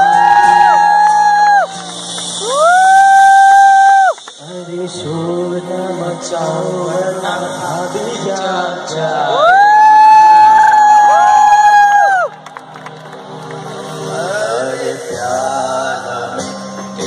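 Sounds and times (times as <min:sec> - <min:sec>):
crowd cheering: 0:00.0 - 0:05.4, 0:09.3 - 0:14.7
man singing: 0:04.4 - 0:09.9, 0:14.0 - 0:17.0
live band playing: 0:12.2 - 0:17.0.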